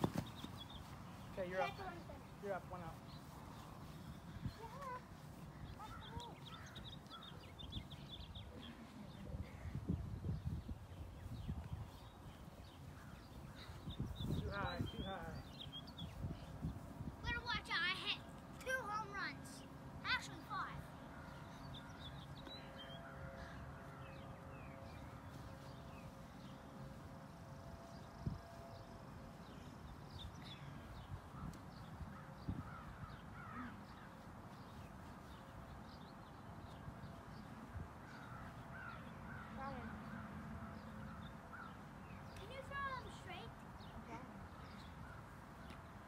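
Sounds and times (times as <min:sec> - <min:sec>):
birds calling: 0:00.0 - 0:17.8, 0:29.5 - 0:46.0.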